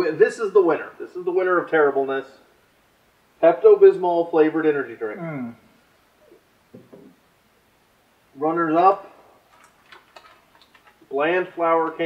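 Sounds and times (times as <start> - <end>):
plastic bag crinkling: 9.5 - 11.0.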